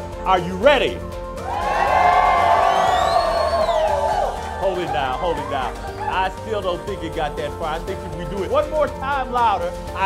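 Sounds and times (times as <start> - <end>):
high whoops: 1.4 - 6.2.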